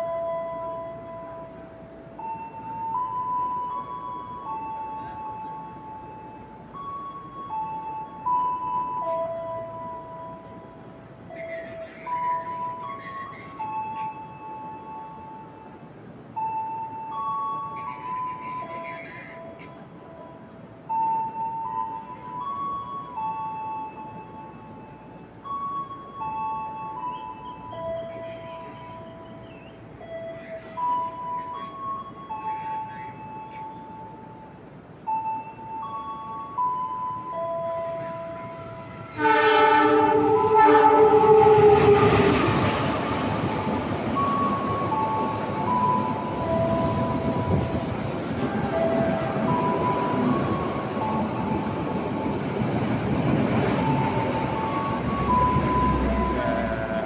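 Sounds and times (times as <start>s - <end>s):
train passing through station: 0.0s - 57.0s
locomotive horn blast: 38.0s - 43.8s, 54.4s - 57.0s.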